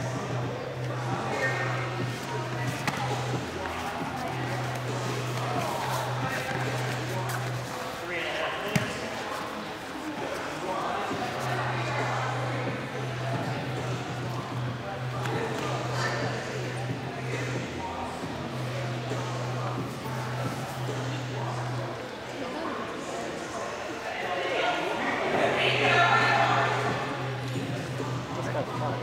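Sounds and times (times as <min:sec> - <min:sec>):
chatter of many voices: 0:00.0 - 0:29.0.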